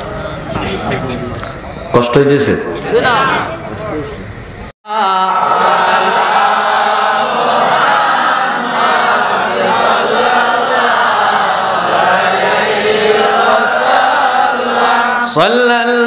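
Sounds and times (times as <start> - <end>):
devotional chanting over loudspeakers: 0.0 - 16.0.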